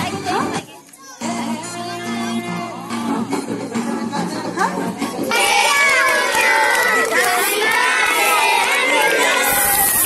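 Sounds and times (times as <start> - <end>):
children's voices: 5.0 - 10.0.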